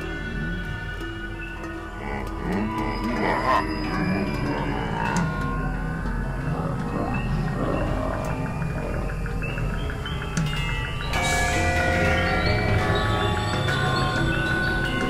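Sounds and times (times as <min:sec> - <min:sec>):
steady low drone: 0:00.0 - 0:15.0.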